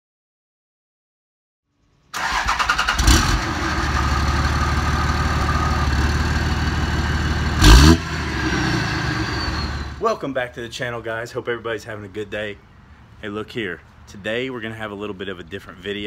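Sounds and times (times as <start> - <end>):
diesel engine cranking and idling: 2.2 - 10.0
engine revving: 2.2 - 10.0
turbo whistle: 9.0 - 10.0.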